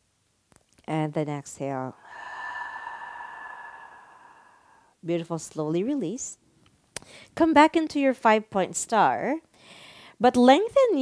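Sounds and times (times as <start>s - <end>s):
breathy sigh: 1.9s - 5.0s.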